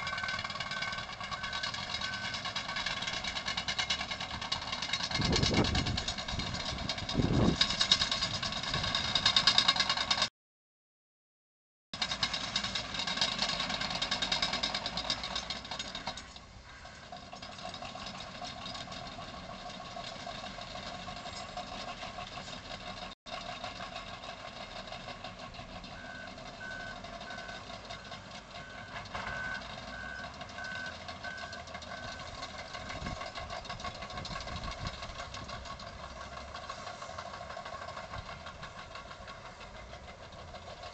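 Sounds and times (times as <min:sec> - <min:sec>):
reversing alarm beeping: 0:00.0 - 0:02.9, 0:26.0 - 0:32.4
diesel earthmoving machines working: 0:00.0 - 0:10.3, 0:12.0 - 0:40.9.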